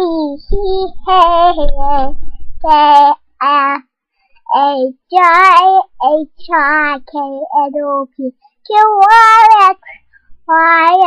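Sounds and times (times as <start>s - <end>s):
girl singing: 0.0s - 11.0s.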